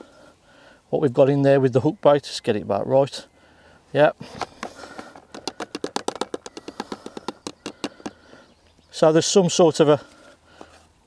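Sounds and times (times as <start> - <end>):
pellets clicking into plastic box: 4.5 - 8.2.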